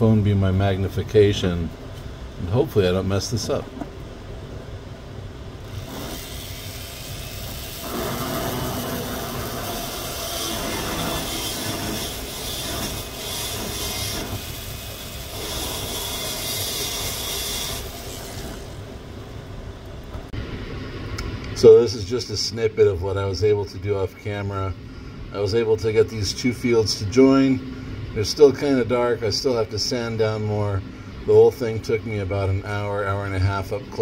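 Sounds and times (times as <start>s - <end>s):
rotary tool grinding stone: 5.7s - 18.8s.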